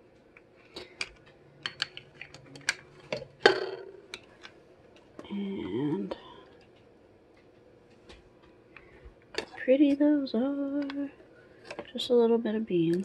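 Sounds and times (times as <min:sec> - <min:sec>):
plastic tongs clicking on metal: 0:01.0 - 0:02.8.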